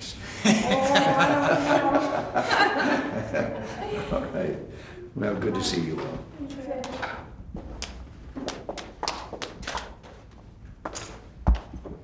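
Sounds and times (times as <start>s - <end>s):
footsteps on hardwood floor: 6.8s - 12.0s.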